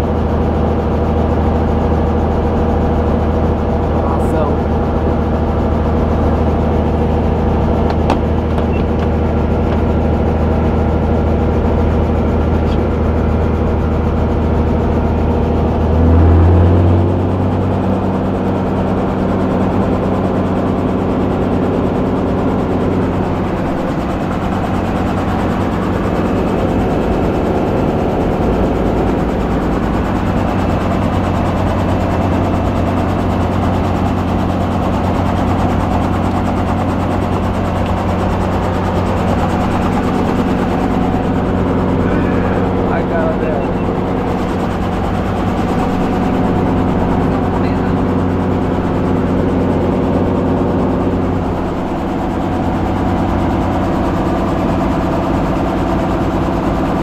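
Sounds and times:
helicopter piston engine running: 0.0s - 57.0s.

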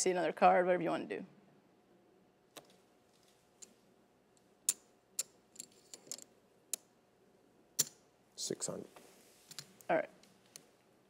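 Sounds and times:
clay poker chips clicking: 4.7s - 6.8s.

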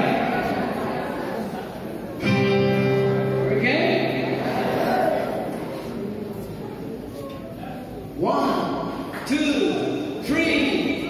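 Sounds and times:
acoustic guitar chord strummed: 2.2s - 5.4s.

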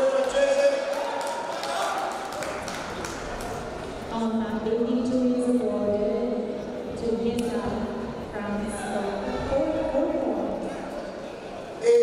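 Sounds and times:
indistinct voices in large hall: 0.0s - 12.0s.

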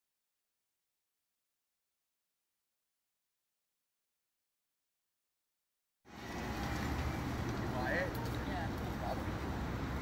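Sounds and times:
traffic rumble: 6.1s - 10.0s.

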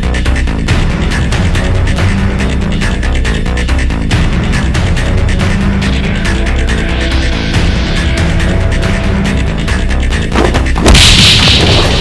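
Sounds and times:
heavy soundtrack music: 0.0s - 12.0s.

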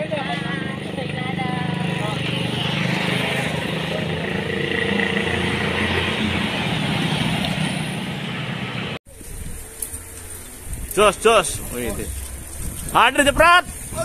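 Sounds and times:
passing traffic: 0.0s - 9.0s.

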